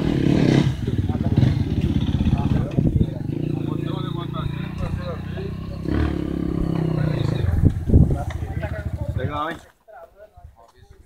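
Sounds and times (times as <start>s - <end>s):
sharp low thumps: 0.0s - 9.3s
dirt bike engine idling: 0.0s - 9.6s.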